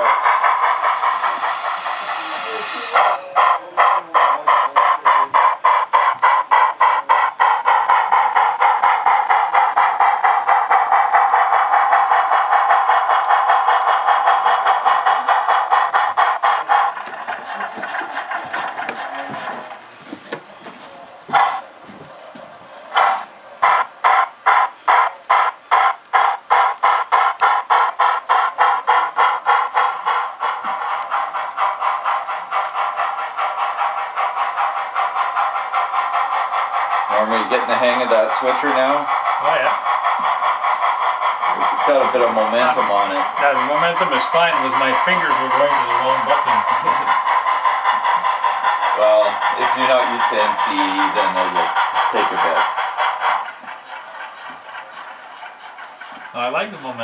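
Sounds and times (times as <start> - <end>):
model locomotive steady tone: 0.0 - 57.0
steam locomotive chuffing beat: 0.0 - 57.0.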